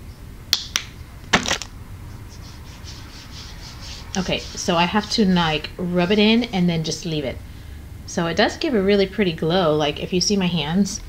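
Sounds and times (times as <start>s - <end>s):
faint rubbing lotion into skin: 2.1s - 5.4s.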